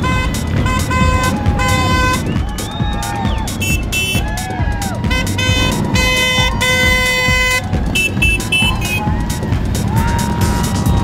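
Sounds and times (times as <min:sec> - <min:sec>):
horns honking: 0:00.0 - 0:11.0
motorcycle engines rumbling: 0:00.0 - 0:11.0.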